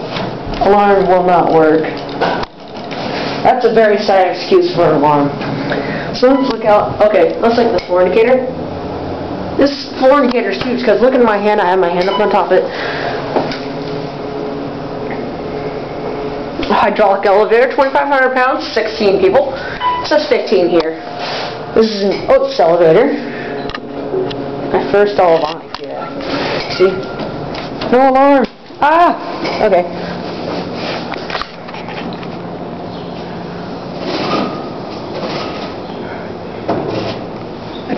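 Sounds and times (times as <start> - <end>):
elevator mechanical hum: 0.0 - 37.9.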